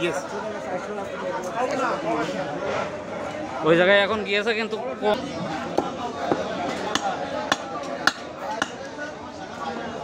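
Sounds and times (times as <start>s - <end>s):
cleaver chopping on wooden block: 5.8s - 8.8s.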